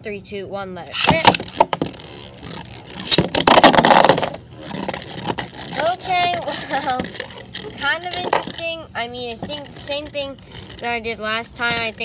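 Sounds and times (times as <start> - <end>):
spinning top scraping on plastic: 0.9 - 12.0
tops spinning: 0.9 - 12.0.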